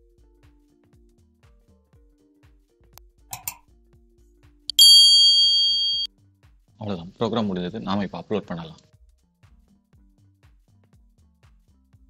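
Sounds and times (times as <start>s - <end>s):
bright bell-like ding: 4.7s - 6.1s
short click: 4.7s - 6.1s.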